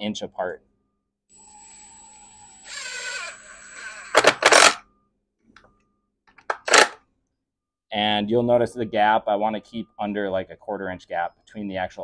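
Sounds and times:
impact driver motor whine: 0:01.3 - 0:04.8.

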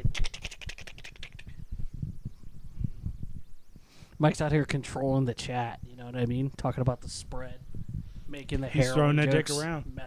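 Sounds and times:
fast sharp clicks: 0:00.0 - 0:01.6
microphone handling thumps and rustles: 0:01.4 - 0:03.9.

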